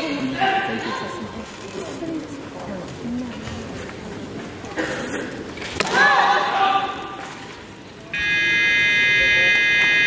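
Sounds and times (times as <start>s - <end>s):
electronic buzzer: 8.2s - 10.0s.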